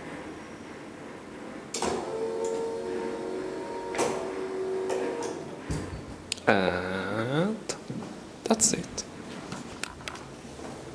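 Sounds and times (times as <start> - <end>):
electric motor hum: 1.9 - 5.6.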